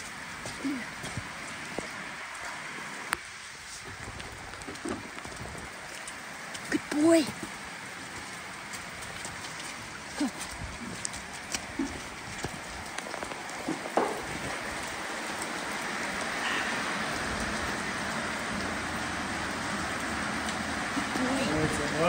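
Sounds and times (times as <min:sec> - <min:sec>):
heavy rain pouring: 0:00.0 - 0:22.0
sharp knocks: 0:13.7 - 0:14.5.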